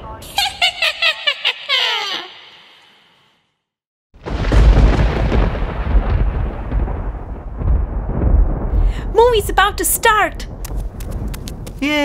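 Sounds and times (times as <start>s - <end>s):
thunder rumbling: 4.2s - 12.0s.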